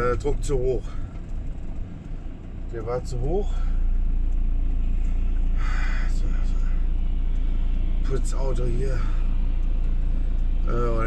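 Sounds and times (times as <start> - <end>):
van engine and road rumble: 0.0 - 11.0.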